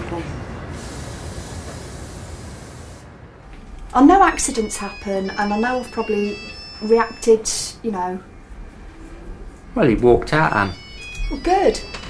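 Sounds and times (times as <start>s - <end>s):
rushing hiss: 0.7s - 3.3s.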